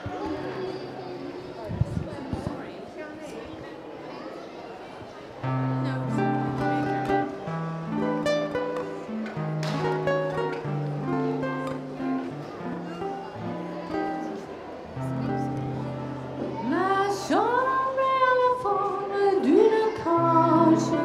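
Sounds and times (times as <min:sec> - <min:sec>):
strummed acoustic guitars: 0:05.4 - 0:18.4, 0:19.4 - 0:21.0.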